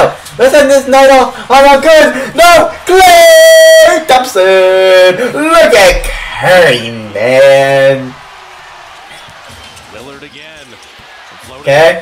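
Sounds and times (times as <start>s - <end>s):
commentator talking: 0.0s - 8.2s, 11.4s - 12.0s.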